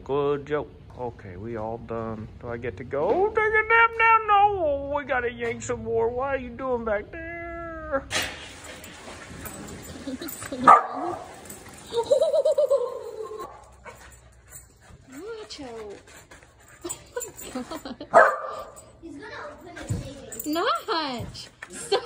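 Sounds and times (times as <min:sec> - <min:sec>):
dog yipping: 0:10.4 - 0:11.6, 0:18.1 - 0:18.8
dog barking sharply: 0:10.7 - 0:11.2, 0:18.1 - 0:18.6.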